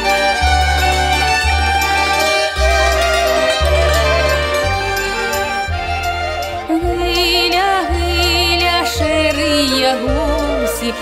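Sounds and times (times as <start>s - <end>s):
fiddle melody: 0.0s - 11.0s
folk dance music ensemble: 0.0s - 11.0s.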